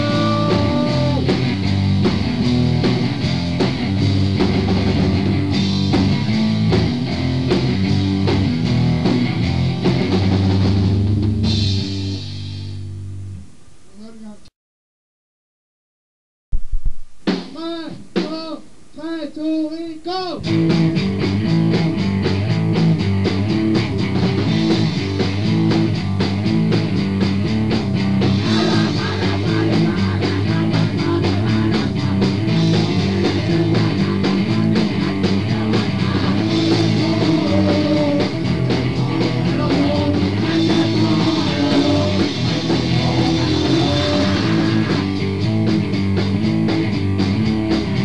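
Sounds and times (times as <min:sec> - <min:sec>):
punk band playing fast song: 0:00.0 - 0:12.8, 0:17.2 - 0:18.6, 0:20.3 - 0:48.0.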